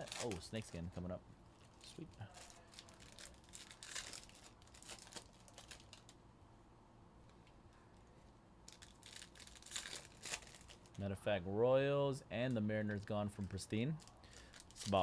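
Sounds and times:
foil card wrappers crinkling: 0:00.0 - 0:01.0, 0:01.6 - 0:06.2, 0:08.7 - 0:11.0, 0:12.4 - 0:15.0.

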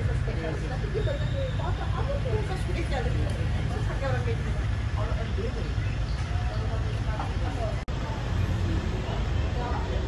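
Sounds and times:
low street rumble: 0:00.0 - 0:10.0
people chatting: 0:00.0 - 0:10.0.

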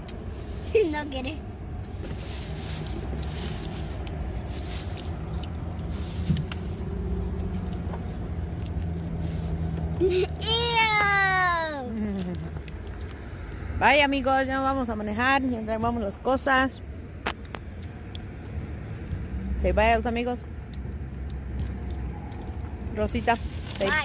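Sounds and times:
car engine humming: 0:00.0 - 0:24.0.

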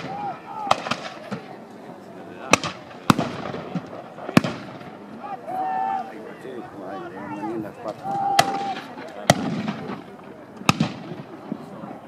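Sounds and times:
musket shots with echo: 0:08.4 - 0:10.1, 0:10.7 - 0:11.3.

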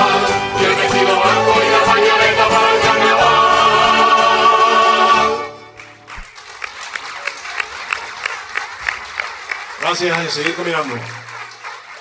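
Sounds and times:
audience applauding: 0:05.6 - 0:12.0.

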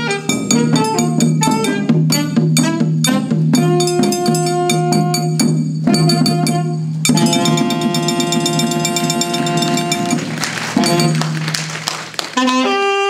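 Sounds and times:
saxophone melody: 0:00.0 - 0:11.6, 0:12.2 - 0:13.0
bass drum: 0:00.0 - 0:11.8
drum strokes: 0:00.0 - 0:12.5.

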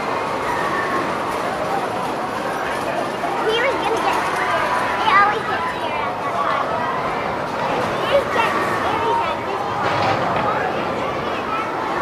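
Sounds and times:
people's voices: 0:00.0 - 0:12.0
roller coaster train on track: 0:00.0 - 0:12.0.

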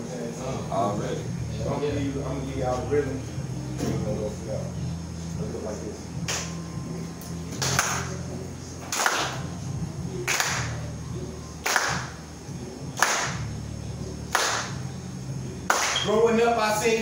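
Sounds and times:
low steady hum: 0:00.0 - 0:17.0
audience clapping in rhythm: 0:06.2 - 0:06.6, 0:07.6 - 0:08.1, 0:08.8 - 0:09.5, 0:10.2 - 0:10.8, 0:11.6 - 0:12.2, 0:13.0 - 0:13.5, 0:14.3 - 0:14.8, 0:15.7 - 0:16.0.

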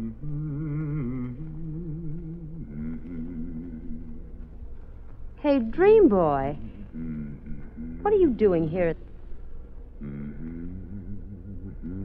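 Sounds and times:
man humming a deep tune: 0:00.0 - 0:04.8, 0:06.6 - 0:08.2, 0:10.0 - 0:12.0.

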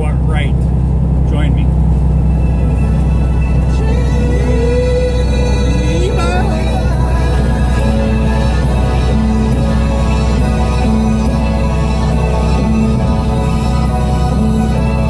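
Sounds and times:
road noise: 0:00.0 - 0:15.0
truck engine drone: 0:00.0 - 0:15.0
gliding synth note: 0:00.7 - 0:15.0
synthesizer music: 0:01.0 - 0:15.0.

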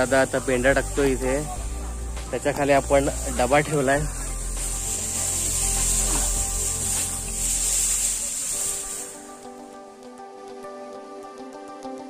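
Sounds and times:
dry straw rustling and crackling: 0:00.0 - 0:09.7.

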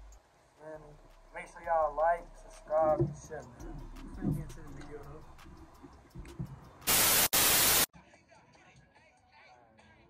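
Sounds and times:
white-noise static burst: 0:06.9 - 0:07.9.

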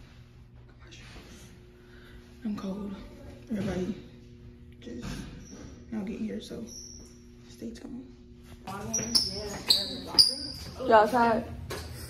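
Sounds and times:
sneakers squeaking on hard floor: 0:06.7 - 0:07.2, 0:08.7 - 0:11.2.

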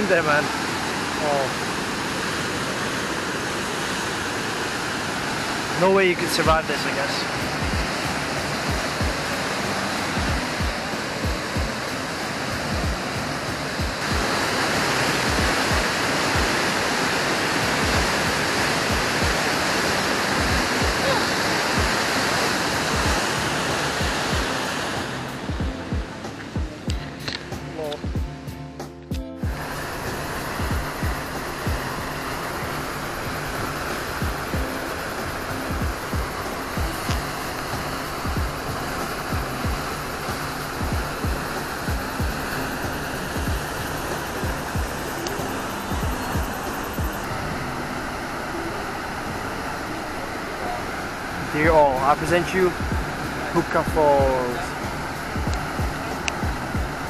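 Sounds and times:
background music with steady beat: 0:00.0 - 0:00.4, 0:05.8 - 0:57.0
waterfall rushing: 0:00.0 - 0:28.2, 0:29.4 - 0:57.0.

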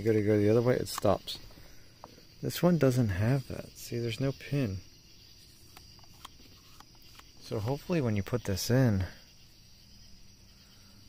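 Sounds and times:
person speaking: 0:00.0 - 0:01.5, 0:02.4 - 0:04.9, 0:06.6 - 0:09.3
faint high-pitched hiss: 0:00.0 - 0:11.0.

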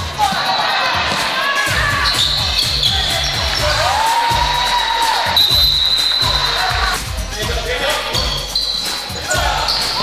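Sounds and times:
shoes squeaking on court: 0:02.0 - 0:03.8, 0:08.1 - 0:10.0.

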